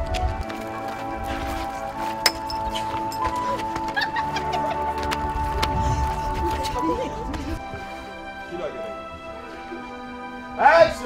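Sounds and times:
film music with held tones: 0.0s - 11.0s.

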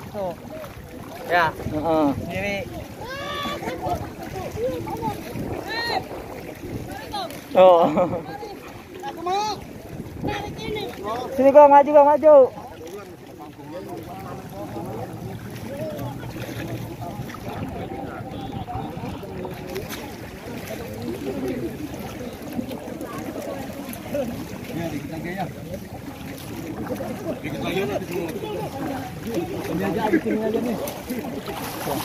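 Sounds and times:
people talking and calling: 0.0s - 32.0s
people wading through water: 0.0s - 32.0s.

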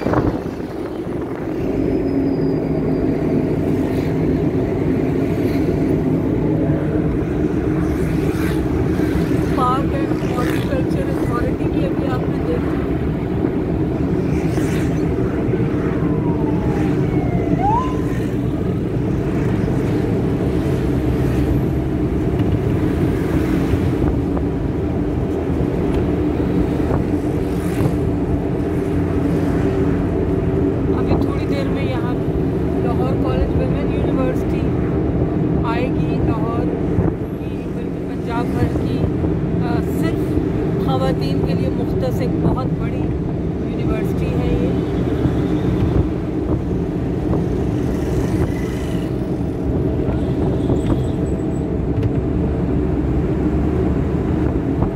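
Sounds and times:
engine drone and road noise: 0.0s - 54.9s.

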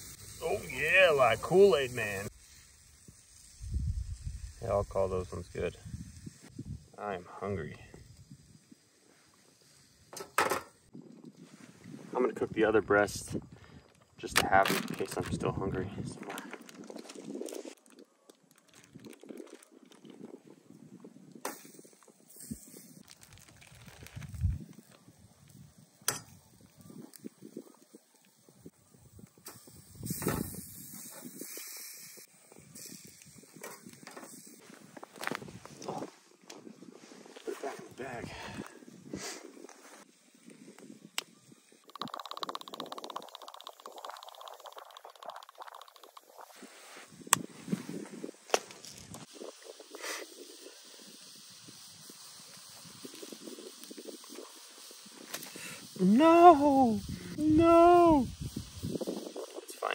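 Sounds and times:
plastic bag rustling and crinkling: 13.9s - 21.1s, 23.0s - 25.6s.

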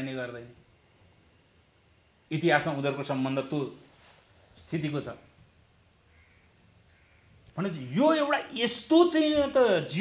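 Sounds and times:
man speaking: 4.6s - 5.3s, 7.6s - 10.0s.

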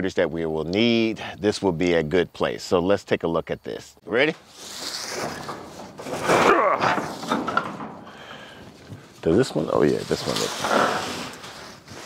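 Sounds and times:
metal barn door scraping open: 4.4s - 12.0s.

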